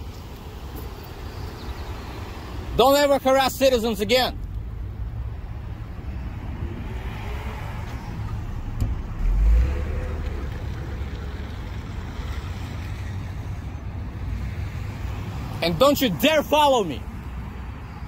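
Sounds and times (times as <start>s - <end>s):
car engine and tyre rumble: 0.0s - 18.0s
heavy low thump: 8.2s - 10.6s.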